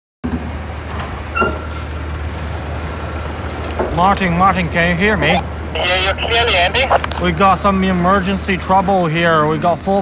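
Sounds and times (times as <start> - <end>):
low engine rumble: 0.4 - 10.0.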